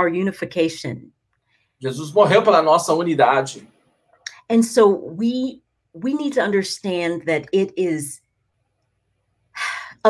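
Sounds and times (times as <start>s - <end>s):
woman speaking: 0.0s - 1.1s, 4.3s - 8.2s, 9.6s - 10.0s.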